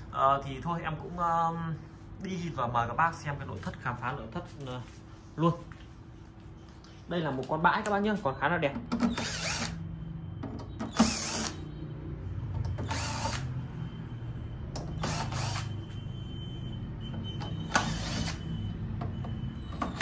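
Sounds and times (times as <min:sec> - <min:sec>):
cordless drill bursts: 0:09.0 - 0:09.8, 0:10.9 - 0:11.7, 0:12.8 - 0:13.5, 0:15.0 - 0:15.8, 0:17.7 - 0:18.6.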